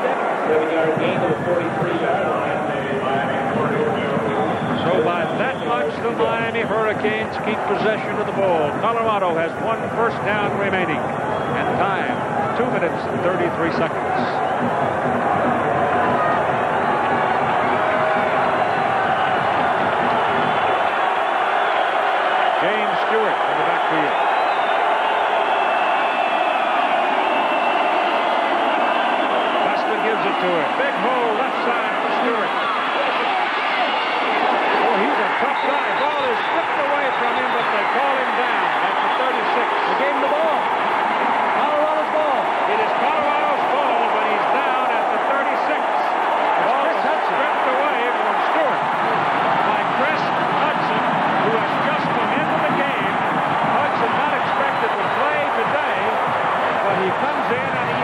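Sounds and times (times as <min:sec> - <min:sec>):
stadium crowd cheering and shouting: 0:00.0 - 0:58.0.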